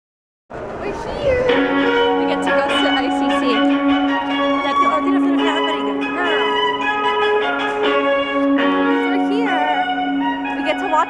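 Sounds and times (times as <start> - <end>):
passers-by talking: 0.5 - 11.0
instrumental music with held notes: 1.4 - 11.0.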